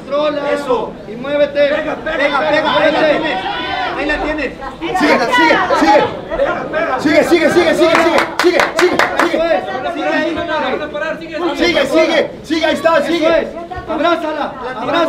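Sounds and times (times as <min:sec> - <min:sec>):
people shouting and talking: 0:00.0 - 0:15.0.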